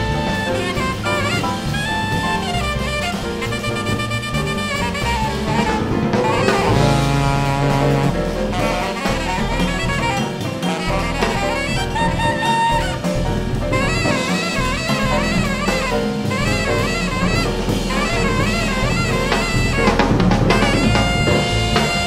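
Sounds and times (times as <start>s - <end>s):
alto saxophone: 0.0s - 22.0s
double bass: 0.0s - 22.0s
drum kit: 0.0s - 22.0s
piano: 0.0s - 22.0s.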